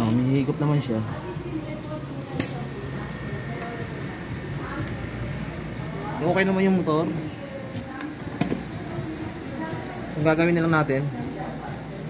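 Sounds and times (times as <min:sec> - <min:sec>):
refrigerator compressor humming: 0:00.0 - 0:12.0.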